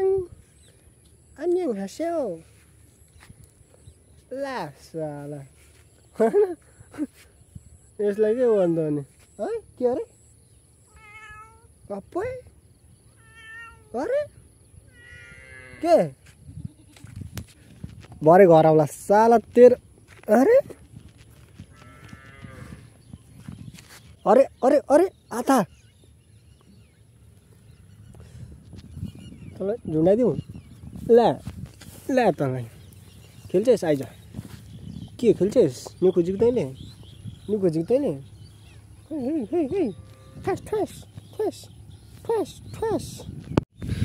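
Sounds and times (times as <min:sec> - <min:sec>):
cat meowing: 0:10.9 - 0:11.7, 0:13.1 - 0:14.0, 0:14.9 - 0:15.4.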